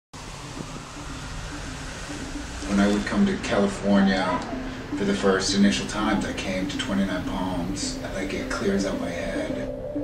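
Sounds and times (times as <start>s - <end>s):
outdoor ambient hiss: 0.2s - 10.0s.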